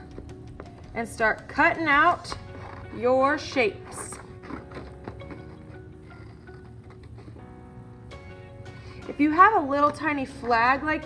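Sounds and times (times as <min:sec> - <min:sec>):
soft background music: 0:00.0 - 0:11.0
scissors cutting paper: 0:01.6 - 0:05.7.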